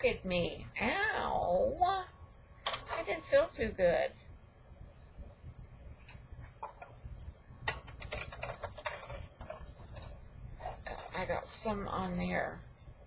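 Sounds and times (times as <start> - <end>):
low steady hum: 0.0 - 13.0
metal sheet and plastic plates clicking: 7.7 - 9.5.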